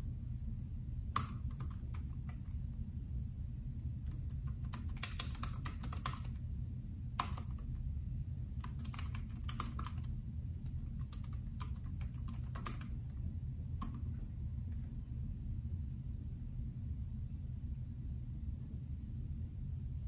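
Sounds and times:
steady low hum: 0.0 - 20.0
keyboard keys typing: 1.1 - 2.7, 4.0 - 6.4, 7.2 - 7.9, 8.5 - 13.2, 13.8 - 14.2.

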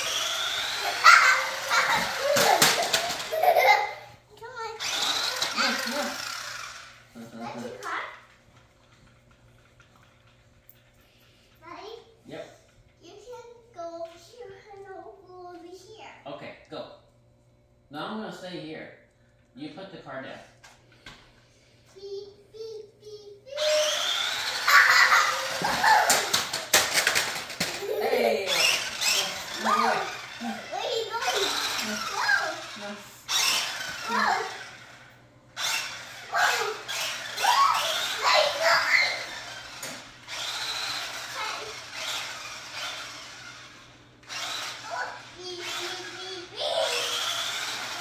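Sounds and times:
child squealing and babbling: 0.0 - 2.8, 23.5 - 26.4, 33.4 - 34.6, 36.3 - 39.5, 44.8 - 47.4
toy car electric motor whirring: 0.0 - 11.8, 22.0 - 48.0.

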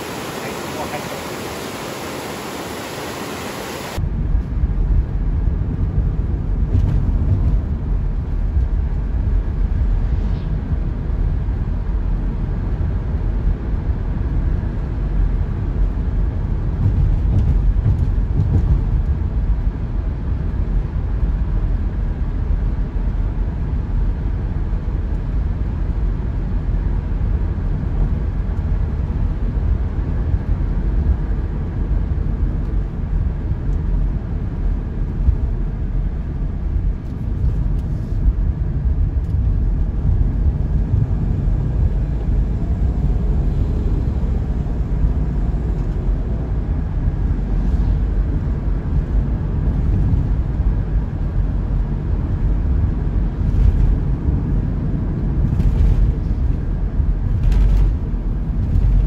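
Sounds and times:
car road and engine rumble: 0.0 - 59.0.

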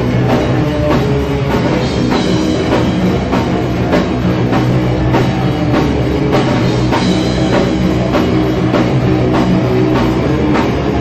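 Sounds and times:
distorted electric guitars: 0.0 - 11.0
drum and cymbal hits: 0.0 - 11.0.

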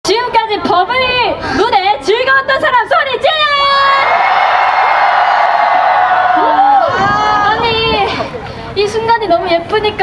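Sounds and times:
crowd cheering: 3.8 - 7.7.

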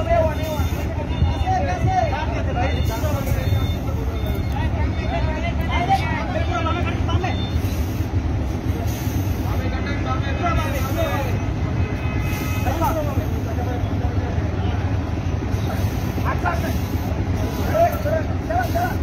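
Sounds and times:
bus diesel engine rumbling: 0.0 - 19.0.

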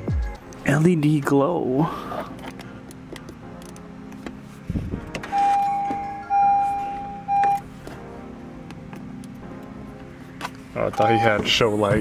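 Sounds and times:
quiet background music: 0.0 - 12.0
electronic chime: 5.3 - 7.6, 11.0 - 11.6.

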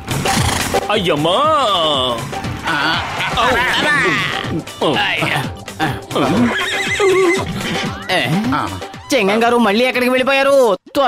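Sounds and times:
background music: 0.0 - 11.0
horse whinnying: 3.0 - 4.6, 6.2 - 9.0.

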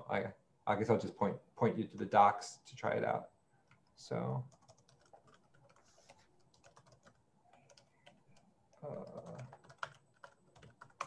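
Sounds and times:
keyboard typing clicks: 6.4 - 11.0.

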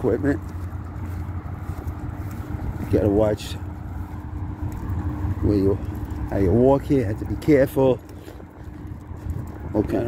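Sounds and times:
low outdoor rumble: 0.0 - 10.0
man's voice: 2.8 - 3.7.

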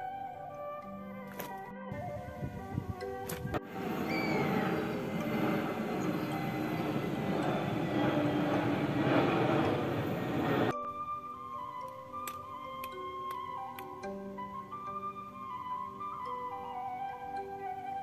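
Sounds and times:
instrumental background music: 0.0 - 18.0
jet airliner rumble: 3.5 - 10.7.

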